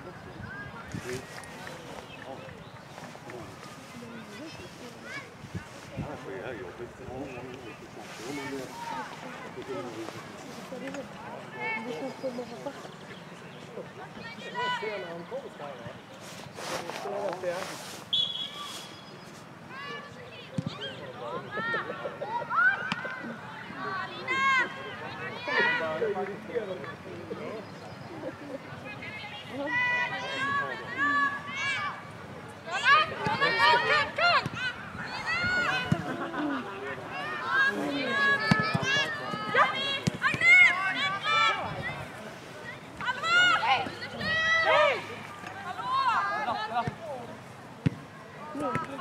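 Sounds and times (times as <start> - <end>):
referee's whistle blast: 18.1 - 19.0
players shouting: 32.7 - 49.0.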